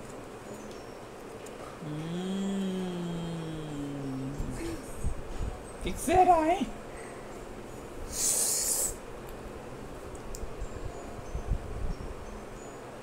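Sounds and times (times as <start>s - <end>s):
faint room noise: 0.0s - 13.0s
short hissing breath: 8.1s - 9.0s.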